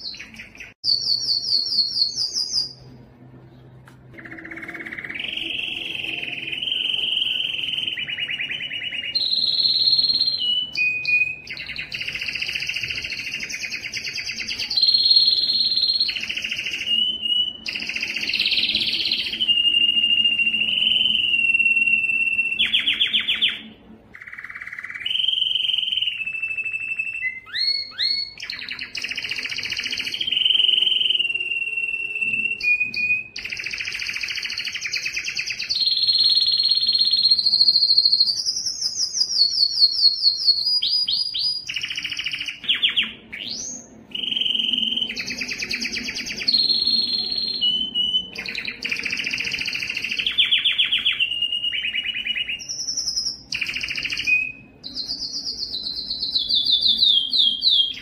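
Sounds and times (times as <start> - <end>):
canary singing: 0.0 - 58.0.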